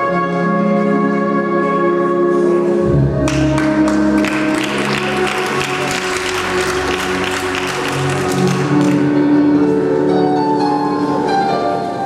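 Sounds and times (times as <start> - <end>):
music playing: 0.0 - 12.0
audience clapping: 3.2 - 9.3.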